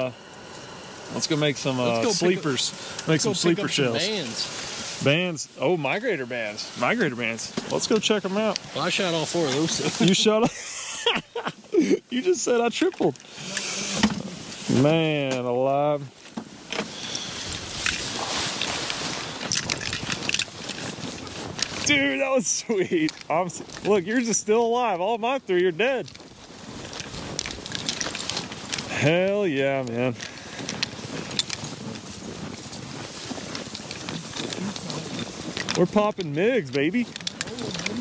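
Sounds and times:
dry grass rustling and scraping: 0.0s - 38.0s
footsteps crunching in snow: 0.0s - 38.0s.

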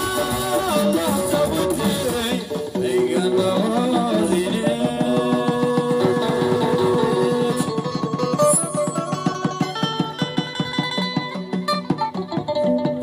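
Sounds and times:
electric guitar: 0.0s - 13.0s
live band playing: 0.0s - 13.0s.

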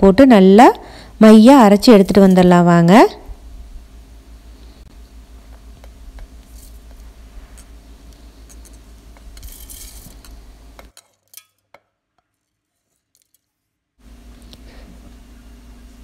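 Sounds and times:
low steady hum: 0.0s - 10.9s, 14.0s - 16.0s
grains clicking into metal jar: 8.5s - 11.7s.

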